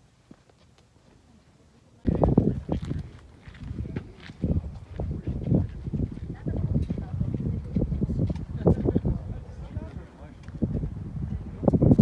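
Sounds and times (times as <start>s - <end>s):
wind buffeting microphone: 2.0s - 12.0s.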